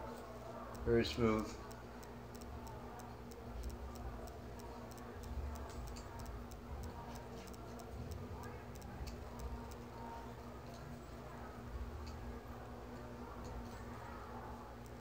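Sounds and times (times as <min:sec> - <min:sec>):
light high-pitched ticking: 0:00.0 - 0:15.0.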